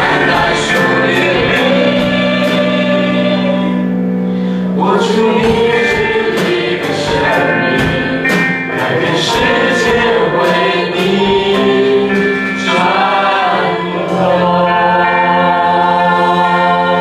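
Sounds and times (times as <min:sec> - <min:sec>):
congregation singing: 0:00.0 - 0:17.0
worship band playing: 0:00.0 - 0:17.0.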